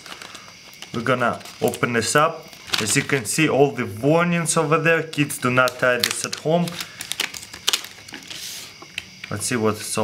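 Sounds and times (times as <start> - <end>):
plastic blister pack crackling: 0.0 - 3.6, 5.1 - 9.4.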